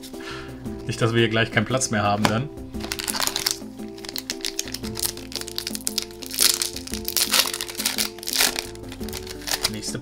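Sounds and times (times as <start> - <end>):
background music melody: 0.0 - 10.0
foil wrapper crinkling: 2.8 - 9.9.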